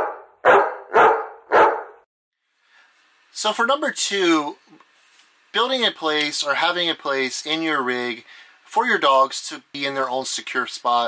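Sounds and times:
dog barking: 0:00.0 - 0:02.0.

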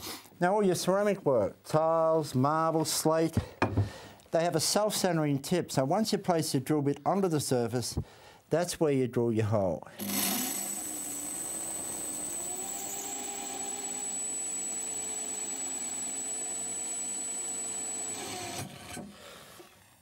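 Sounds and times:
electric drill drilling into tile: 0:10.0 - 0:19.0.

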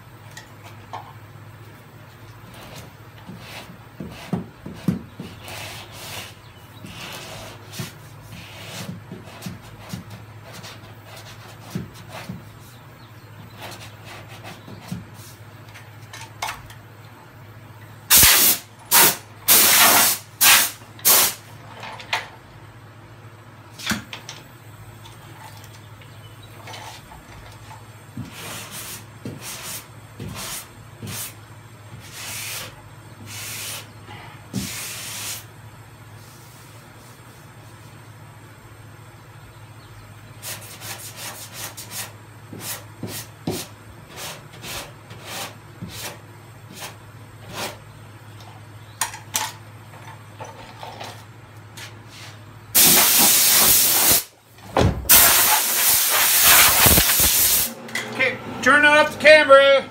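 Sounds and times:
hand sanding strokes: 0:02.6 - 0:12.8, 0:28.3 - 0:31.4, 0:32.0 - 0:33.9, 0:34.6 - 0:35.5, 0:40.4 - 0:47.8, 0:55.1 - 0:57.7
air blow gun hissing: 0:18.1 - 0:21.4, 0:52.8 - 0:54.3, 0:55.1 - 0:57.8.

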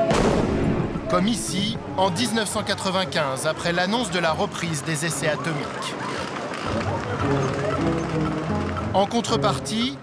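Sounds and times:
background music: 0:00.0 - 0:10.0
crowd running in street: 0:01.8 - 0:10.0.

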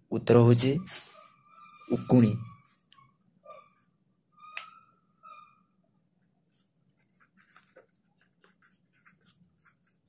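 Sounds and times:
short high squeaks: 0:00.8 - 0:05.8
pen scratching on paper: 0:06.5 - 0:10.0.

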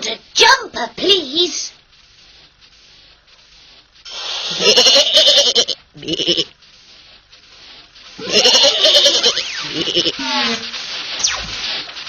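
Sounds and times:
wavering bleat-like cartoon cry: 0:04.5 - 0:06.5, 0:08.2 - 0:10.7.

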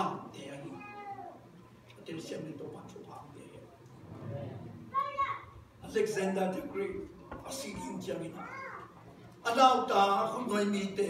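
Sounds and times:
murmur of speech: 0:00.0 - 0:09.6
child squealing: 0:04.9 - 0:05.5.

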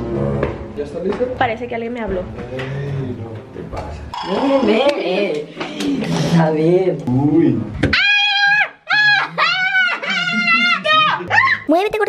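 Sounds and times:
woman shrieking: 0:07.9 - 0:11.7.

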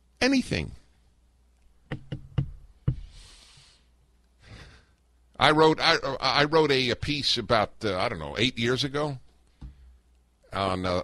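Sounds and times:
soft breathy hiss: 0:02.8 - 0:05.2.

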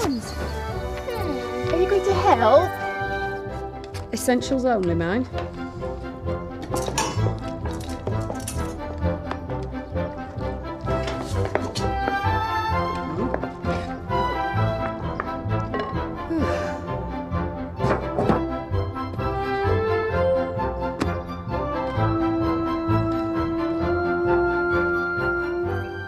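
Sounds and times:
film score music: 0:00.0 - 0:26.0
objects thunking: 0:14.8 - 0:16.2, 0:17.7 - 0:18.7.

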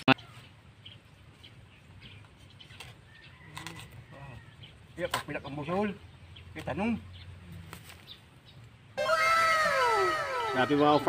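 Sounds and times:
birds calling: 0:00.0 - 0:11.0.

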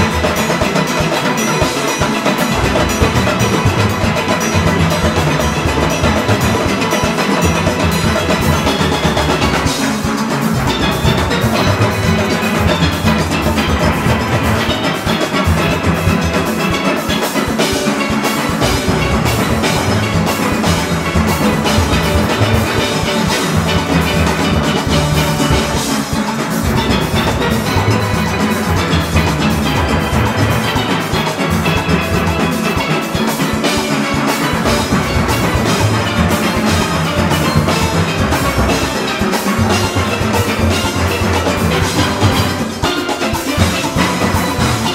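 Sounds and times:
congas: 0:00.0 - 0:44.9
cymbals: 0:00.0 - 0:44.9
drum kit: 0:00.0 - 0:44.9
steel pans playing: 0:00.0 - 0:44.9.

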